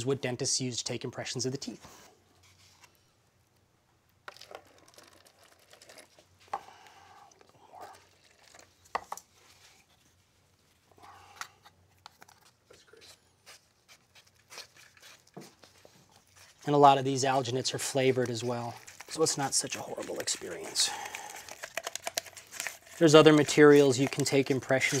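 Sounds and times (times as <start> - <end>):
stick scooping powder: 12.0 - 25.0.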